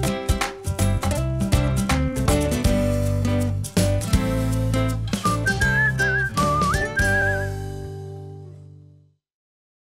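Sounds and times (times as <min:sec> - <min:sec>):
upbeat jingle with plucked guitar: 0:00.0 - 0:08.4
whistled melody: 0:05.2 - 0:07.8.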